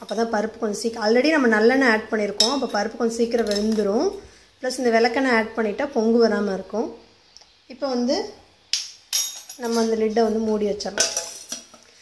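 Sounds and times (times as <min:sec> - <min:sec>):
ladle stirring in a pot: 0:09.6 - 0:12.0.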